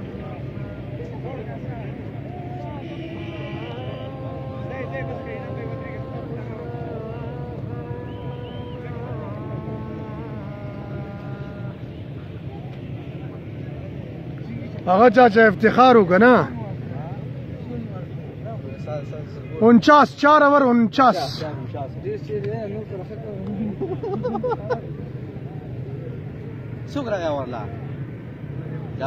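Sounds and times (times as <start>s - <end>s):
steady low hum: 0.0s - 14.4s
people talking and calling out: 0.0s - 29.0s.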